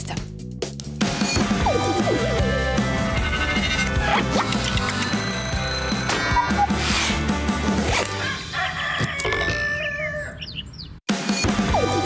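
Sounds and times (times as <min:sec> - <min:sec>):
jingle music: 0:01.8 - 0:06.5
cartoon alarm clock ringing: 0:04.9 - 0:06.1.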